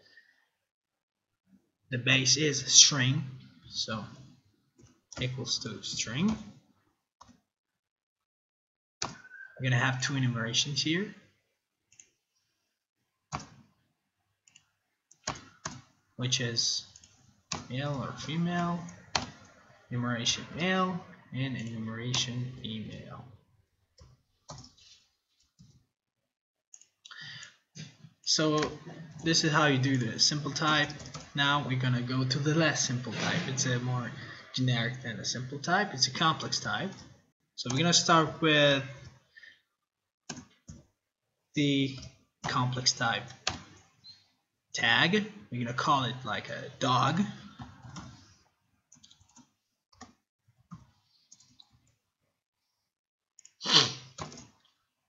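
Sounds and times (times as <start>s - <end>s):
keyboard typing clicks: 14.5s - 15.9s, 16.9s - 17.7s, 24.0s - 24.8s, 29.9s - 31.3s, 54.2s - 54.7s.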